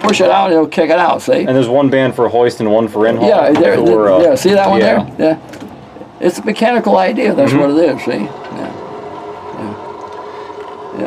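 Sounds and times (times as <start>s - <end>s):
crane engine humming: 7.1s - 11.0s.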